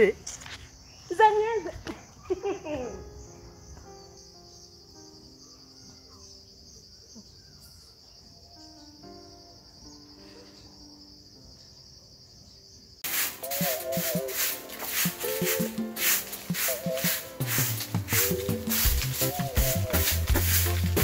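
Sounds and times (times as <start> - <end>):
soft keyboard music: 2.6 - 7.1, 7.7 - 21.0
insect chirring: 3.0 - 21.0.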